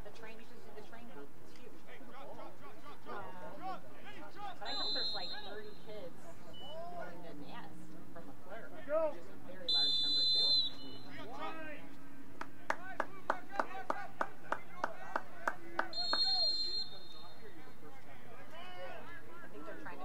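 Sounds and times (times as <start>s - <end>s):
distant shouting voices: 2.0s - 7.4s, 8.1s - 20.0s
referee's whistle blasts: 4.6s - 5.8s, 9.7s - 11.3s, 15.9s - 17.6s
hand claps: 12.4s - 16.4s.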